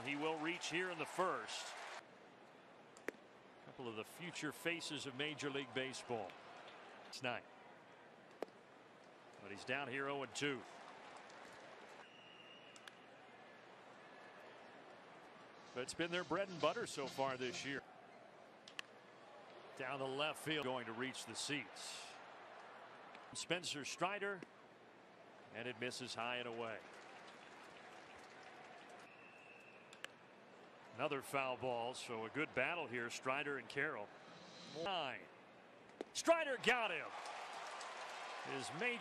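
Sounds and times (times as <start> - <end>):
crowd noise hiss: 0.0 - 2.0, 15.4 - 17.8
faint ballpark crowd ambience: 0.0 - 39.0.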